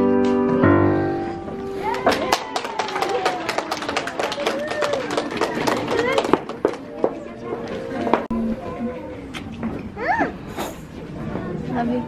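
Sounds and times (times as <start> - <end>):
audience clapping: 1.8 - 7.3.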